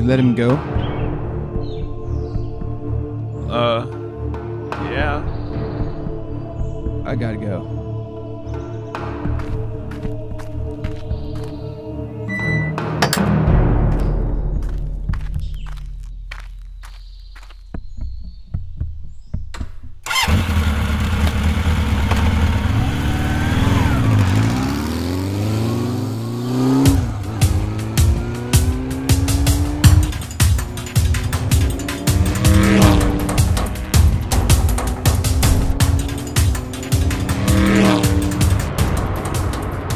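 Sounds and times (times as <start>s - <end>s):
background music: 0.0s - 21.0s, 22.7s - 39.9s
motorcycle engine revving: 20.0s - 39.9s.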